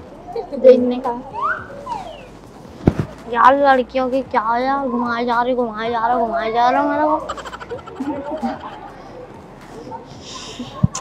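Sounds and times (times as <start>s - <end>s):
comic slide whistle: 1.3s - 2.3s
short low thump: 2.8s - 3.2s.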